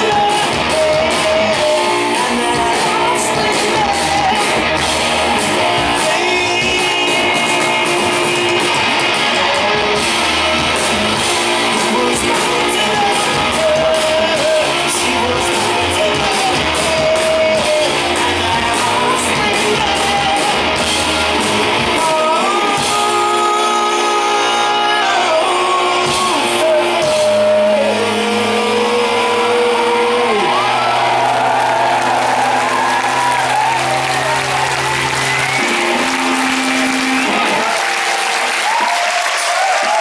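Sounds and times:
crowd cheering: 0.0 - 22.8, 28.4 - 40.0
person singing: 0.0 - 31.5
rock band playing: 0.0 - 40.0.

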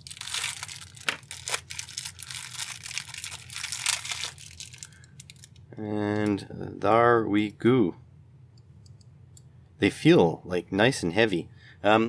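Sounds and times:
plastic bag crinkling and tearing: 0.0 - 5.6.

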